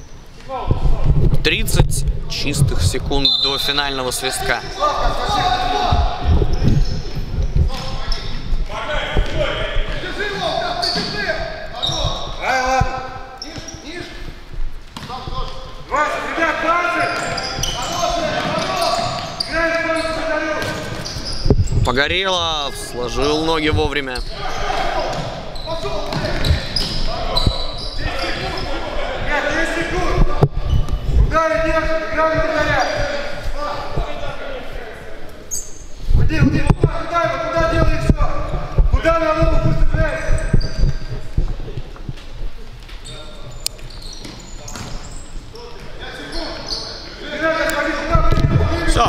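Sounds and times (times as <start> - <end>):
players shouting: 4.0 - 6.6, 16.0 - 20.8, 22.2 - 30.2.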